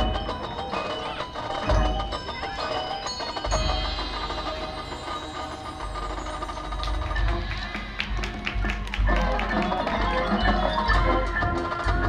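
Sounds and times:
mallet percussion notes: 0.0 - 12.0
marching band playing: 0.0 - 12.0.

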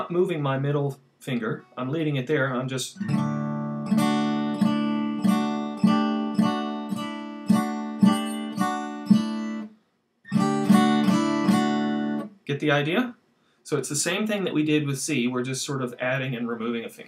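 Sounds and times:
acoustic guitar strumming: 3.0 - 9.7, 10.3 - 12.4.

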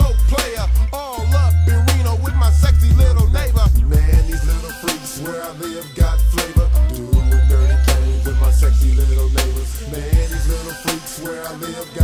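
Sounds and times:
deep bass line: 0.0 - 4.9, 6.0 - 10.9
rapped vocals: 0.0 - 12.0.

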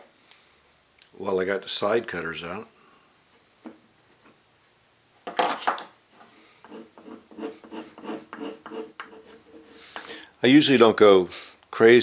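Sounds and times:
steel blade scraping wood: 6.6 - 9.9.

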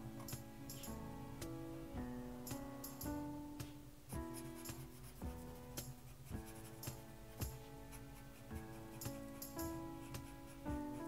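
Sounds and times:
light background music: 0.0 - 11.0
marker scratching on paper: 4.3 - 11.0.

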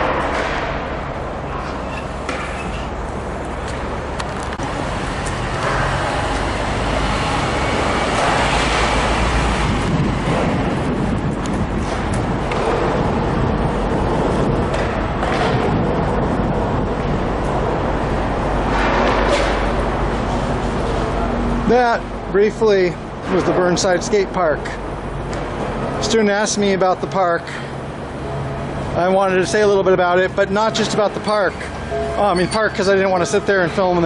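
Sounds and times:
city traffic rumble: 0.0 - 34.0.

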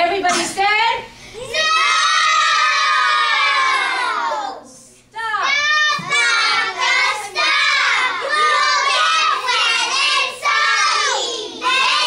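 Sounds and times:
children shouting in unison: 1.4 - 4.7, 5.5 - 12.0.

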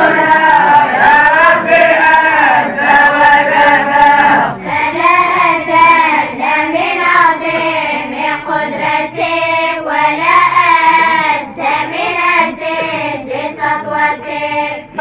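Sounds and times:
children chanting in unison: 0.0 - 15.0.

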